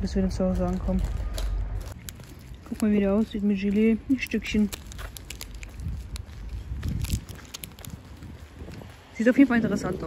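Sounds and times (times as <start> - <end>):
wind and handling rumble: 0.0 - 10.0
snack wrapper crackling: 1.9 - 3.1, 4.0 - 8.9.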